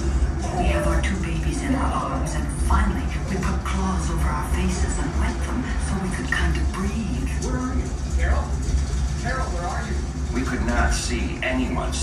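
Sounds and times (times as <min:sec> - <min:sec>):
recorded voices over loudspeakers: 0:00.0 - 0:12.0
steady low rumble: 0:00.0 - 0:12.0.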